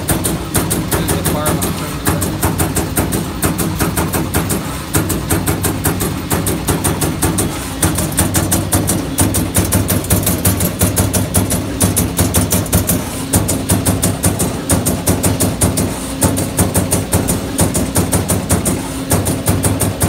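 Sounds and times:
machine humming: 0.0 - 20.0
punch press punching sheet metal: 0.0 - 20.0.

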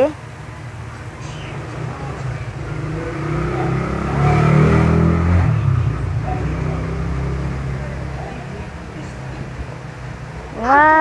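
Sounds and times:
vehicle engine passing by: 1.1 - 10.7.

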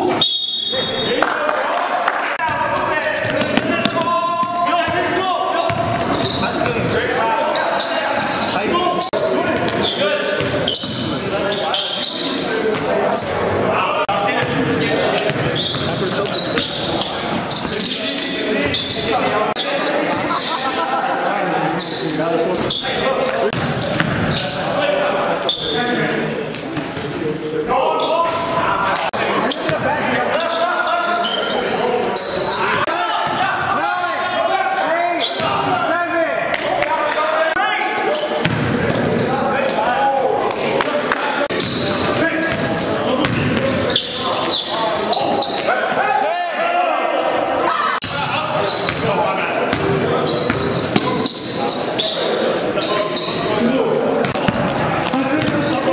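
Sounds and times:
voices in large hall: 0.0 - 55.9
basketball bouncing on gym floor: 3.2 - 4.6, 5.7 - 6.9, 54.2 - 55.7.

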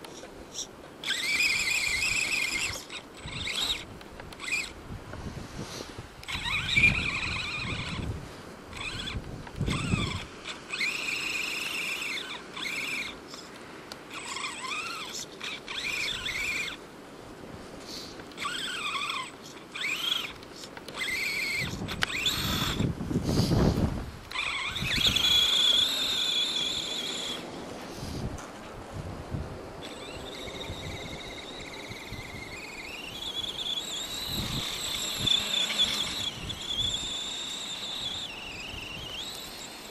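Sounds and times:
electric motor whining: 0.1 - 16.8, 18.2 - 28.4, 29.8 - 39.9.

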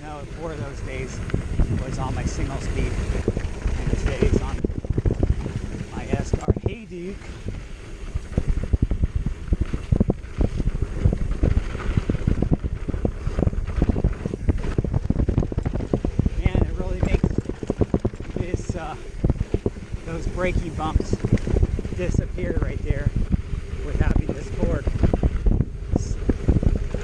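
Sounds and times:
bike rattling over bumps: 0.0 - 27.0
wind noise on microphone: 0.0 - 27.0.

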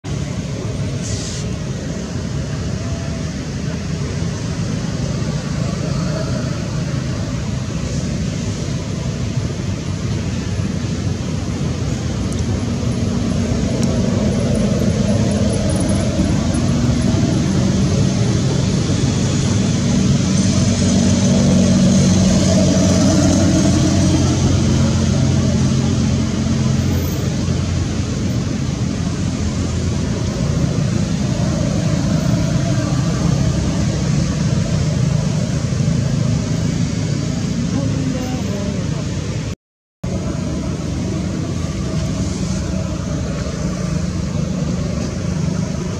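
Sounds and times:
low engine rumble: 0.0 - 45.9.

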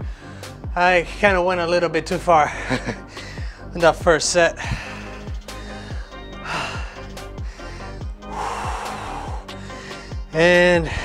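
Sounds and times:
man breathing heavily: 0.0 - 0.7, 2.5 - 3.8, 4.5 - 11.0
background music with steady beat: 0.0 - 11.0
loud exhales: 4.6 - 10.2.

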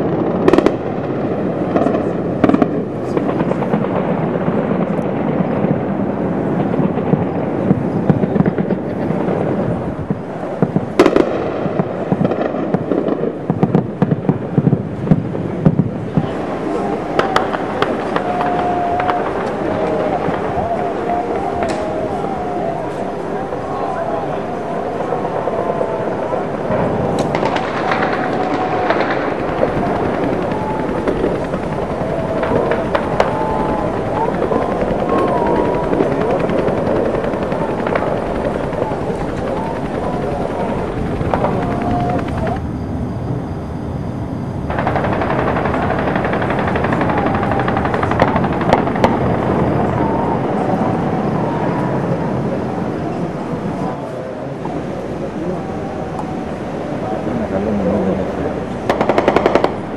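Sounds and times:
automatic gunfire: 27.3 - 42.6, 44.7 - 49.6, 58.9 - 59.9.

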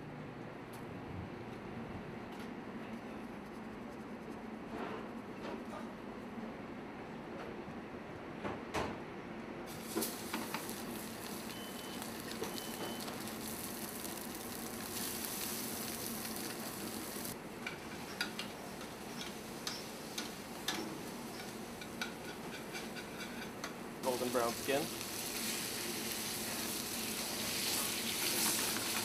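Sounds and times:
fish sizzling in a pan: 9.7 - 17.4, 24.0 - 29.0.

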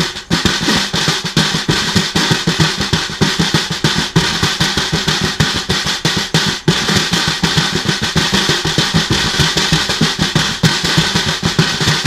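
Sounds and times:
snare drum played by hand: 0.0 - 12.0.

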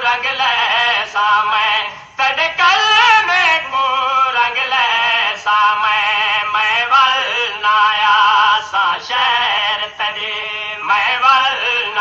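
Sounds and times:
person singing a mourning lament: 0.0 - 12.0.

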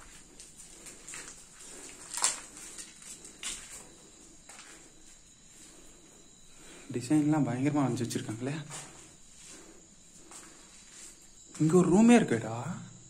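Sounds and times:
footsteps on concrete floor: 0.0 - 5.9, 8.7 - 11.7.

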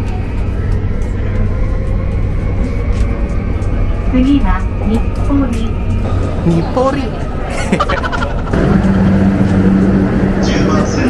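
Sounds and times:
electric train humming: 0.0 - 11.0
low rumble: 0.0 - 11.0
voices: 0.0 - 11.0.

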